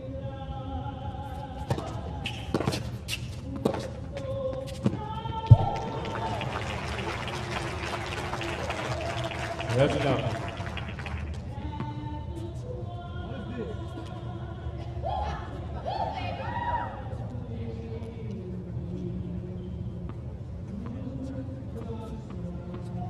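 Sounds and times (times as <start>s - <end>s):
crowd applause and cheering: 5.5s - 11.5s.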